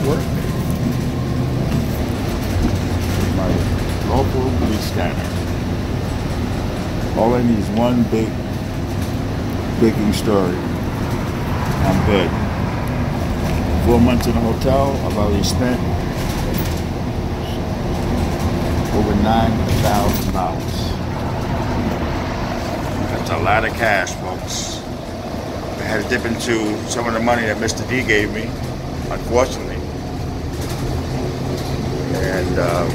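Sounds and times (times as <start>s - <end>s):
vehicle interior road rumble: 0.0s - 32.9s.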